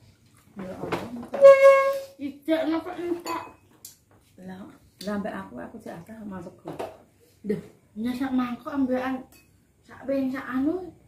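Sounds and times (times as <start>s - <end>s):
spoons clinking on plates: 3.1s - 3.7s.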